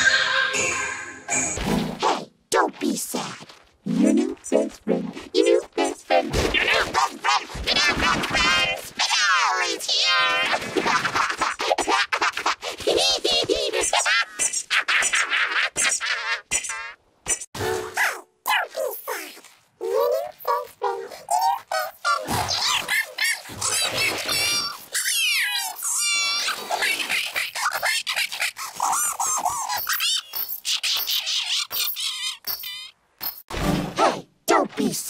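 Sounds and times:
pitch-shifted cartoon voice: 0:02.0 - 0:12.1, 0:12.8 - 0:32.9, 0:34.0 - 0:35.0.

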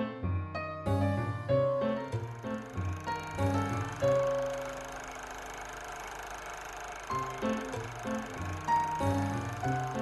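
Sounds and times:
instrumental music with bass: 0:00.0 - 0:04.8, 0:07.2 - 0:10.0.

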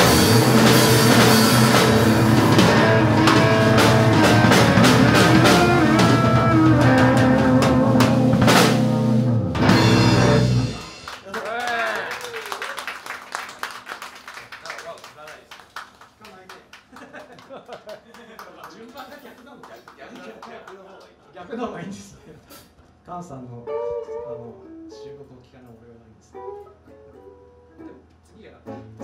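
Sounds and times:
electric blues band playing: 0:00.0 - 0:11.3, 0:23.6 - 0:25.0, 0:26.3 - 0:29.0
scattered clapping: 0:10.8 - 0:21.2.

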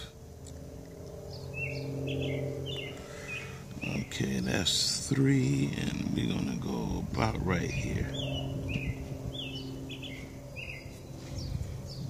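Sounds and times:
steady low hum: 0:00.0 - 0:12.0
small bird chirping: 0:01.2 - 0:04.6, 0:07.7 - 0:12.0.

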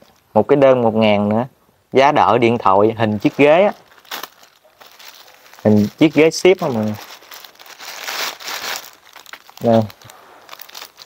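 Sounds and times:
plastic mailer crinkling: 0:03.2 - 0:11.0
plastic tearing: 0:03.2 - 0:11.0.

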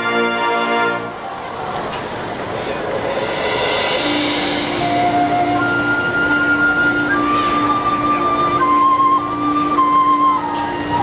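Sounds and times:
long held band notes: 0:00.0 - 0:11.0
hissing wash of sound: 0:00.7 - 0:11.0.

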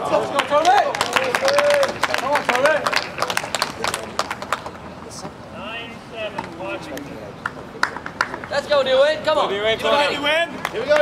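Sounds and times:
people clapping: 0:00.0 - 0:04.8, 0:07.4 - 0:08.9, 0:10.5 - 0:11.0.

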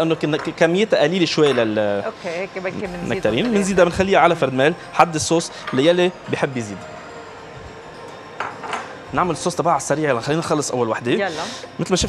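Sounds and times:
dishes and utensils clattering: 0:08.0 - 0:09.5.

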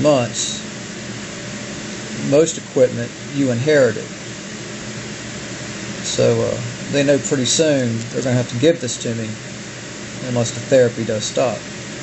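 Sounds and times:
machine hiss: 0:00.0 - 0:12.0.

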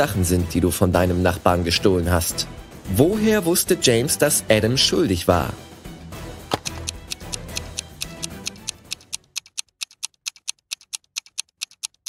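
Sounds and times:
stopwatch ticking: 0:06.6 - 0:12.0.

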